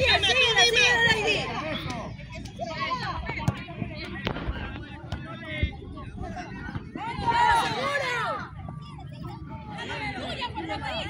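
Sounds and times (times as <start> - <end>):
players and spectators shouting: 5.0 - 11.0.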